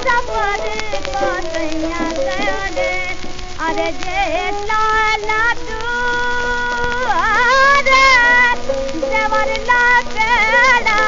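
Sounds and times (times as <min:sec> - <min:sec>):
record surface noise: 0:00.0 - 0:11.0
song on old record: 0:00.0 - 0:11.0.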